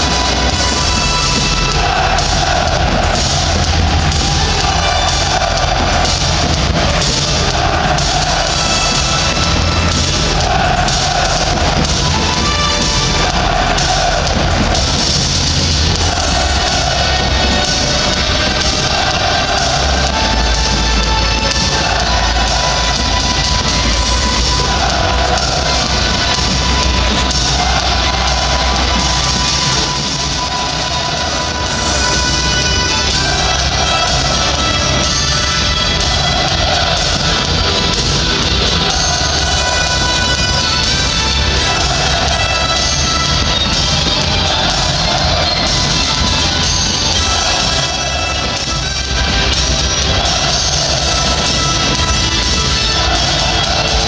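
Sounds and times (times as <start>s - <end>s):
large crowd noise: 0.0s - 54.0s
loud music over sound system: 0.0s - 54.0s.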